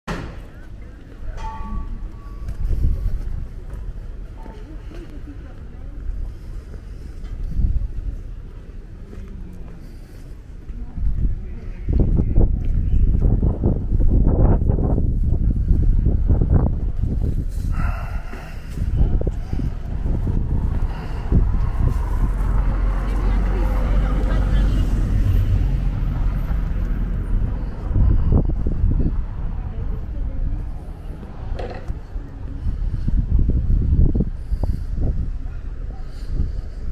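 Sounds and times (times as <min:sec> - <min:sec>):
indistinct voices of passersby: 0:00.1 - 0:36.9
wind buffeting microphone: 0:01.6 - 0:36.9.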